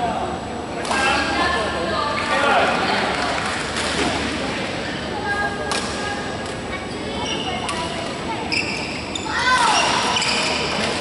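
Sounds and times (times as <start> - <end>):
short squeal: 8.5 - 10.8.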